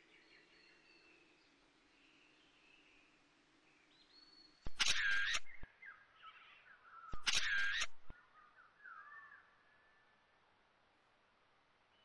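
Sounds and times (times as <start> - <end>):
faint bird chirps: 0.0 - 10.4
loud harsh bird calls: 4.7 - 5.6, 7.1 - 8.1.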